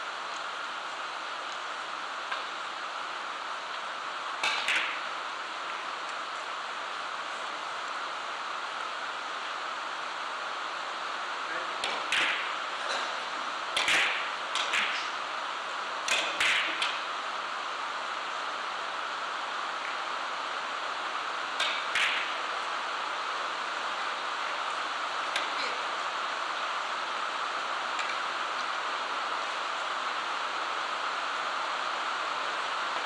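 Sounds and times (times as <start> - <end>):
steady background hiss: 0.0 - 33.0.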